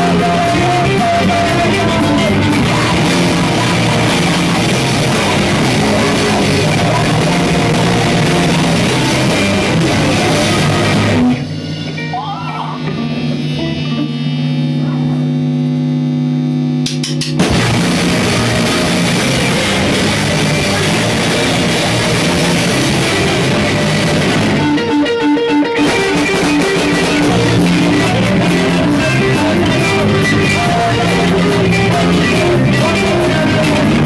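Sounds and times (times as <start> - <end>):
drum kit: 0.0 - 15.2, 16.8 - 34.0
rock band playing: 0.0 - 15.2, 16.8 - 34.0
ringing held guitar notes: 0.0 - 16.0, 17.4 - 34.0.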